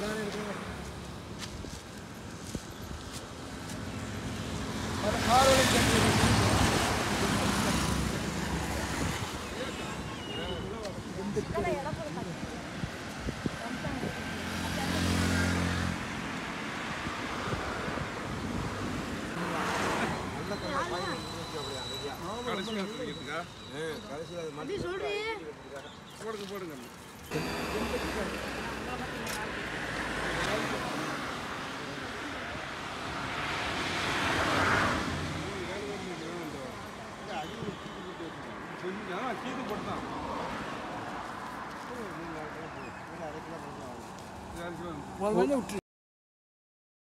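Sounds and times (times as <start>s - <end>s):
vehicles passing on highway: 0.0s - 45.8s.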